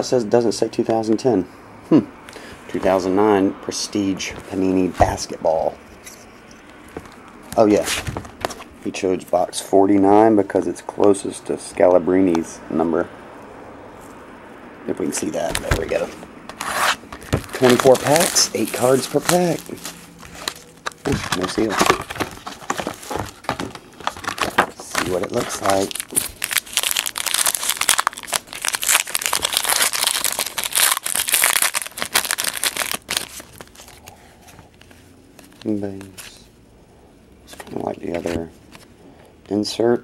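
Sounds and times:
foil wrapper tearing and crinkling: 16.6 - 34.1.

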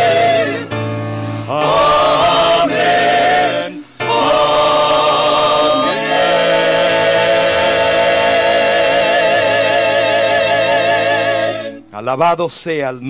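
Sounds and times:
small group singing a hymn: 0.0 - 11.9.

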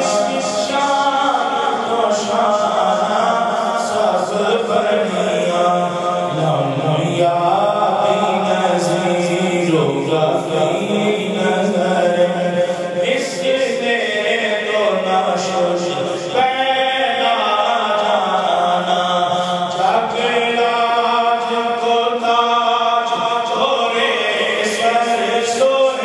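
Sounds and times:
man chanting into a microphone: 0.0 - 26.0.

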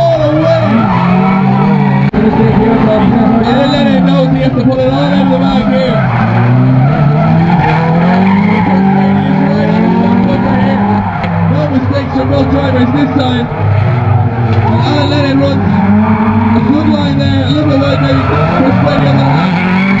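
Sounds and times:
car engines revving high: 0.0 - 20.0
tyres squealing and skidding: 0.0 - 20.0.

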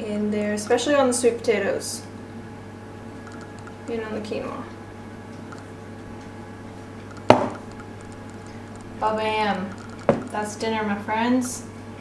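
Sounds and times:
container knocking on countertop: 7.3 - 7.6, 10.0 - 10.3.

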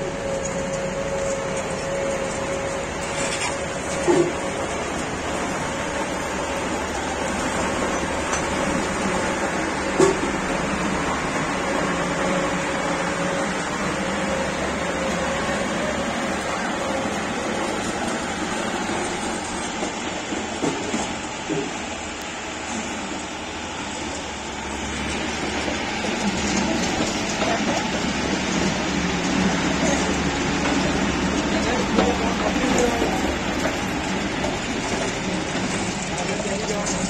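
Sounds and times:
road roller diesel engine running: 0.0 - 37.0.

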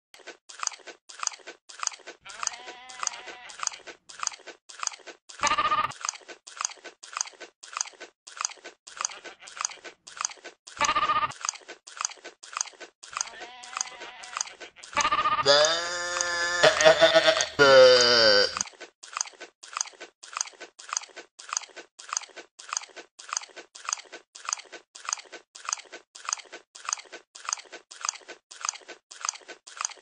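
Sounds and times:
goat chewing loudly: 0.2 - 30.0
goat bleating: 2.2 - 3.8, 13.2 - 18.6
people laughing: 15.5 - 18.6.

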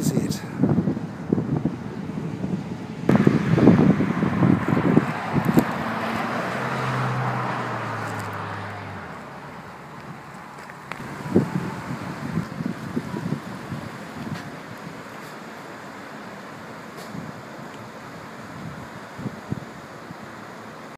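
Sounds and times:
wind buffeting microphone: 0.0 - 15.1, 17.0 - 20.2.

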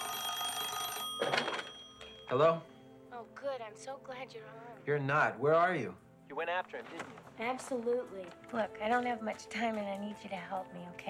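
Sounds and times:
telephone ringing: 0.0 - 2.4.

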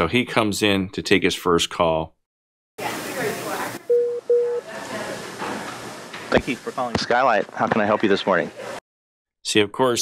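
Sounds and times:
short headset beeps: 3.9 - 4.6.

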